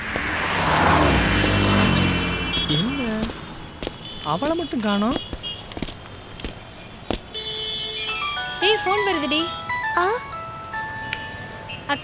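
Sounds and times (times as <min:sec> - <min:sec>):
electronic phone ringtone melody: 0:08.1 - 0:11.8.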